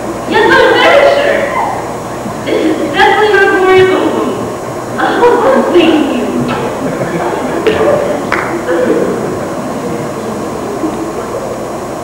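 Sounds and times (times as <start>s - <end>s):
faint indistinct voices: 0.0s - 12.0s
tape hiss: 0.0s - 12.0s.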